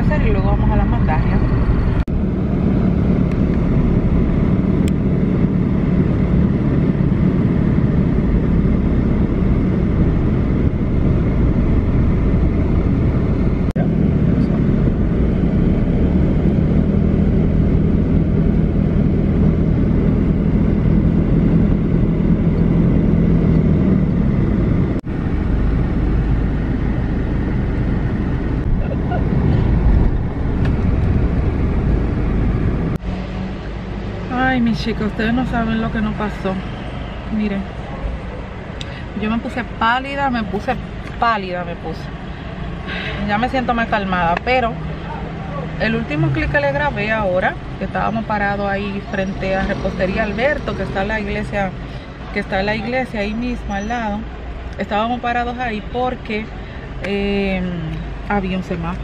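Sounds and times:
car engine hum and road noise: 0.0s - 59.0s.

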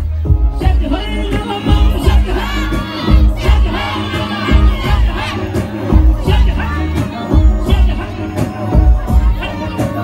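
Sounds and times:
crowd shouting and singing: 0.0s - 10.0s
folk song through loudspeakers: 0.0s - 10.0s.

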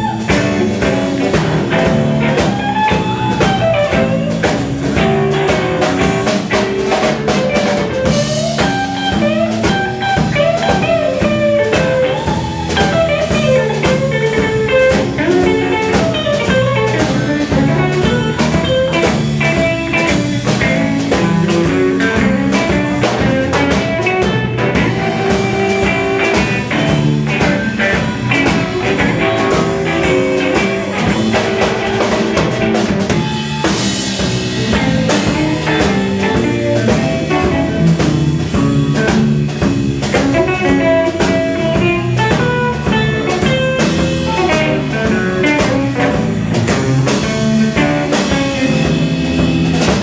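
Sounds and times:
drum kit beat: 0.0s - 50.0s
guitar lines: 0.0s - 50.0s
live blues band: 0.0s - 50.0s.

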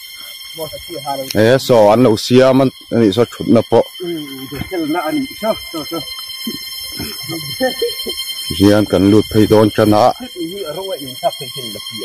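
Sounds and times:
high-pitched ringing tones: 0.0s - 12.0s
men talking quietly: 0.6s - 12.0s.

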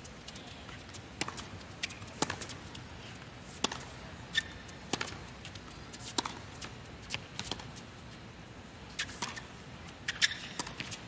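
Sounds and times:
tennis ball bouncing: 0.8s - 2.8s, 3.5s - 7.8s, 8.9s - 11.0s
racket striking tennis ball: 1.2s - 2.6s, 3.5s - 5.2s, 6.0s - 7.7s, 9.0s - 9.5s, 10.1s - 11.0s.

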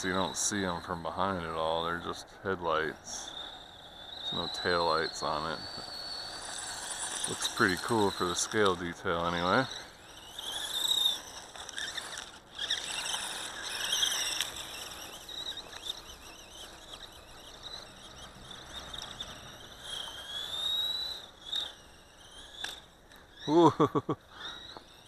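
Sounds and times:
rc car motor whine: 0.0s - 25.0s.

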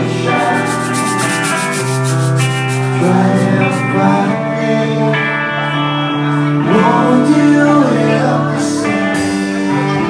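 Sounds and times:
live band bass and guitar: 0.0s - 10.0s.

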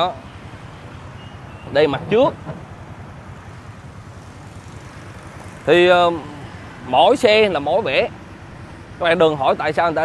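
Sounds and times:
motorbike engines rumbling: 0.0s - 10.0s.

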